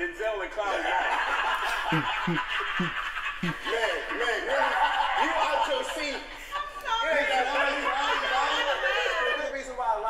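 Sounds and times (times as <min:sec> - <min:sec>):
group laughter: 0:00.5 - 0:10.0
man laughing in short bursts: 0:01.7 - 0:03.9.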